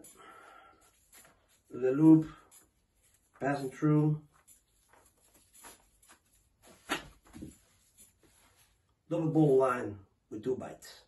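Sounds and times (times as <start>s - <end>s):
rope rustling: 0.0s - 9.0s.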